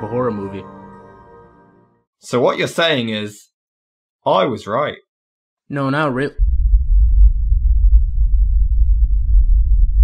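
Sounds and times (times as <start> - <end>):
deep throbbing rumble: 6.4 - 10.0.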